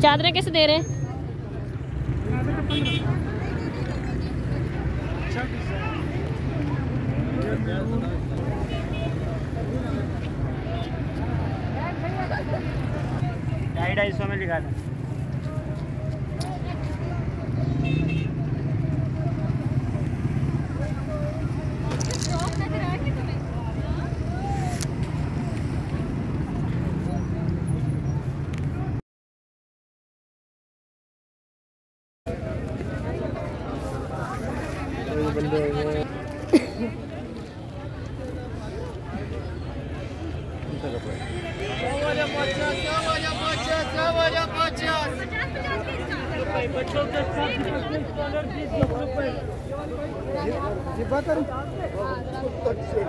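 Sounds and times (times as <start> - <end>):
people talking: 32.3 - 53.0
scattered voices: 32.5 - 53.0.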